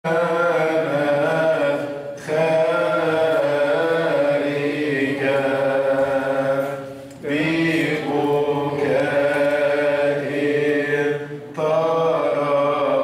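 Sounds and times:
man chanting into microphone: 0:00.0 - 0:13.0.

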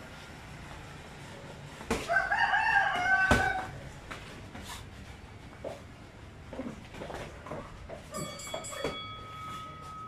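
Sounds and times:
rooster crowing: 0:02.0 - 0:03.8.

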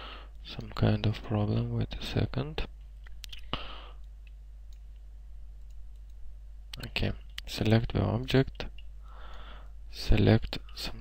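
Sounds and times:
low electrical hum: 0:00.0 - 0:11.0
computer mouse clicks: 0:03.0 - 0:05.0, 0:05.6 - 0:07.5.

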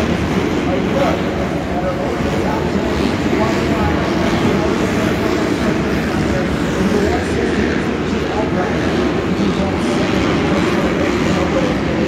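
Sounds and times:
dirt bike engines revving: 0:00.0 - 0:12.0
voices: 0:00.0 - 0:12.0.

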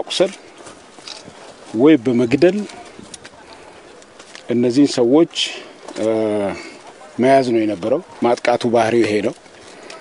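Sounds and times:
man speaking: 0:01.7 - 0:03.7, 0:04.5 - 0:09.4.

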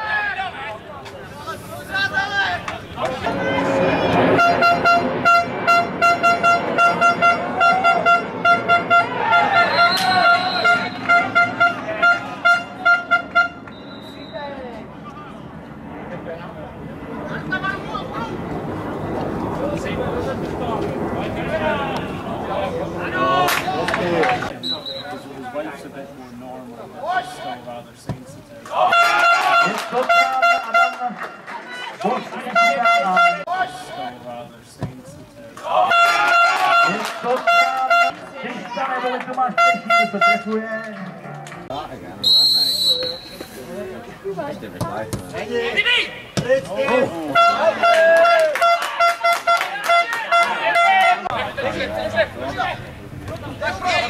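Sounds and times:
players and spectators calling out: 0:00.0 - 0:15.4, 0:26.6 - 0:54.0
horn tooting short blasts: 0:04.4 - 0:14.3, 0:47.3 - 0:48.0.

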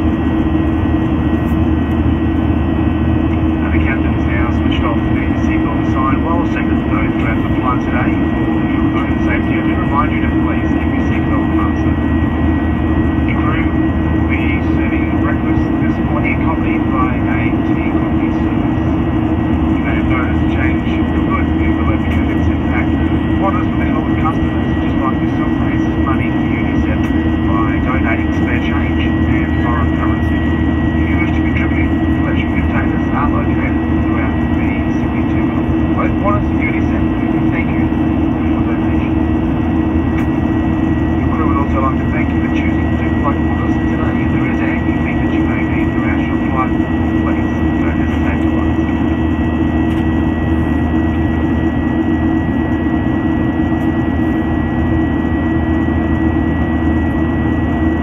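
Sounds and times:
airplane cabin engine drone: 0:00.0 - 0:58.0
high whine: 0:00.0 - 0:58.0.

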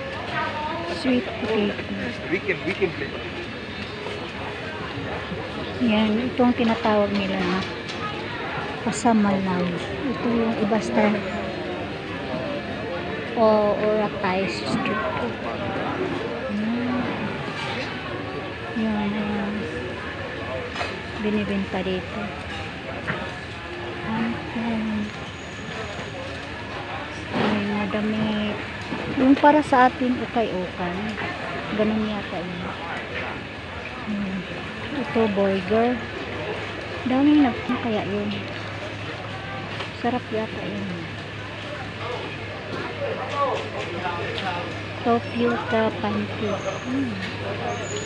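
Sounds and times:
steady low hum: 0:00.0 - 0:47.8
market crowd chatter: 0:00.0 - 0:48.0.

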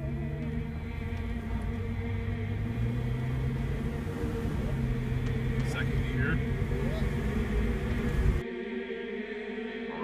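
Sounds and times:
vehicle engine droning: 0:00.0 - 0:08.4.

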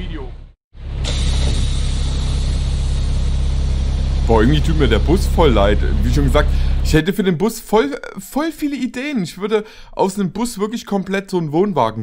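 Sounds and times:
bus engine idling: 0:00.8 - 0:07.1.

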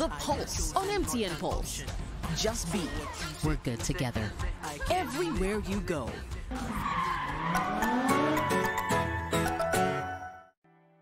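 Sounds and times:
advert music with regular beat: 0:00.0 - 0:10.0
tyres skidding: 0:06.3 - 0:09.5
car engine revving: 0:06.4 - 0:08.9.

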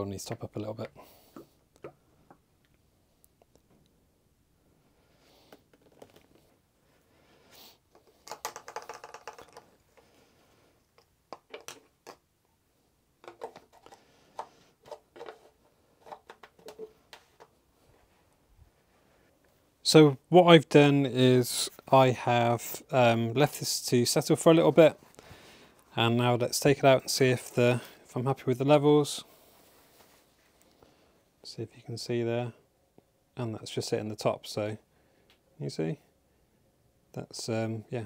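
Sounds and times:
plastic bottle and funnel handling: 0:05.5 - 0:06.5, 0:07.9 - 0:10.2, 0:10.9 - 0:12.2, 0:13.2 - 0:17.6.

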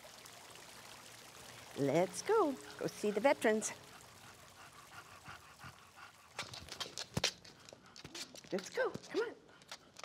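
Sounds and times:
dog panting: 0:02.6 - 0:10.0.

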